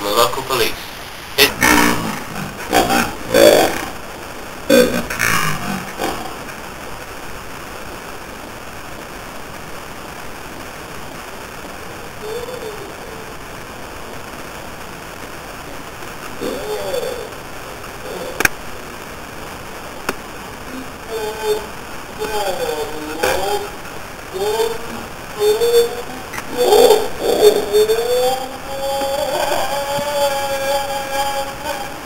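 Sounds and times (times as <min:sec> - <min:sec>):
short vocal sounds: 0:00.0 - 0:06.5
microphone hiss: 0:00.0 - 0:32.0.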